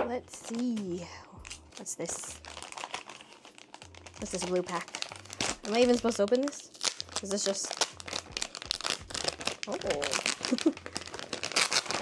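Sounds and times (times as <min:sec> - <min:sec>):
foil pouch crinkling: 0:00.2 - 0:12.0.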